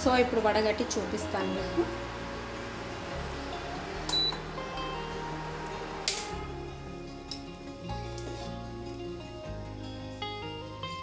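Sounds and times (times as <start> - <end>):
soft background music: 0.0 - 11.0
short high beep: 4.1 - 4.4.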